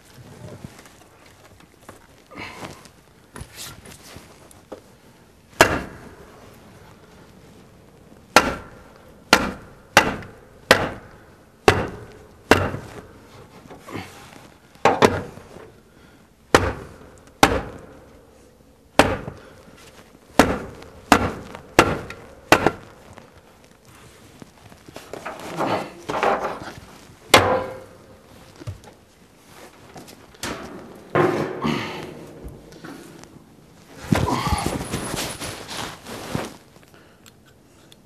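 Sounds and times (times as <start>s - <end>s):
quiet handling sounds: 0.0s - 38.0s
hand hammering on wooden wall: 5.6s - 6.0s, 8.3s - 13.1s, 14.8s - 15.4s, 16.5s - 18.0s, 19.0s - 19.5s, 20.4s - 23.0s, 27.3s - 28.0s.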